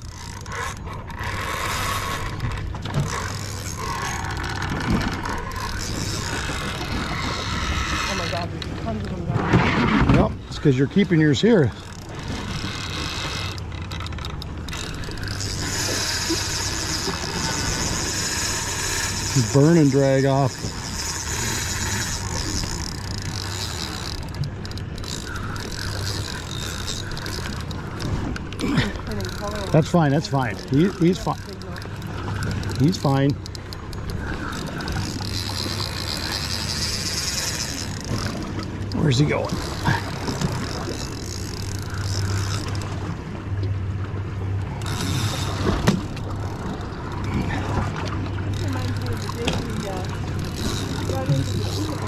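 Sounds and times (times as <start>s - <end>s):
fishing reel gears whirring: 0.0s - 52.0s.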